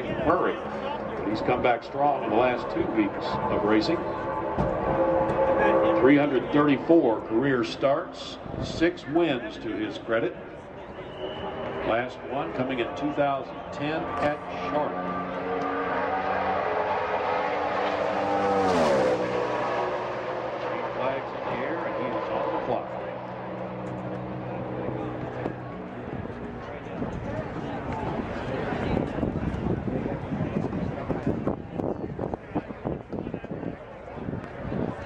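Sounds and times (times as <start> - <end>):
race car passing at full throttle: 0.0 - 35.0.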